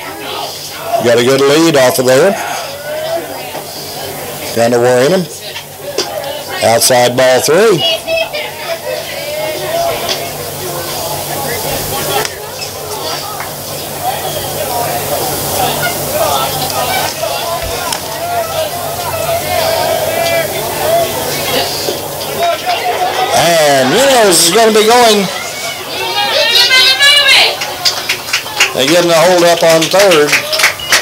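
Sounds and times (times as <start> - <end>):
chatter of spectators: 0.0 - 31.0
steady hiss: 7.8 - 28.4.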